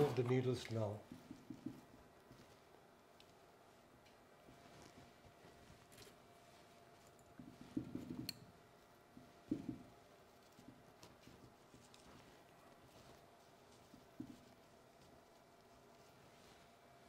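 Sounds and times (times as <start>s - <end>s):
soft rustling knocks: 0.2s - 3.4s, 4.4s - 8.5s, 9.1s - 16.8s.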